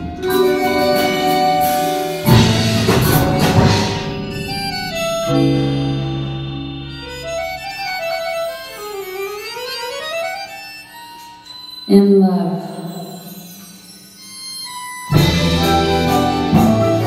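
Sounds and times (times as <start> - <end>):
low bass: 2.3 - 7.8
marimbas and vibraphones playing: 11.1 - 17.0.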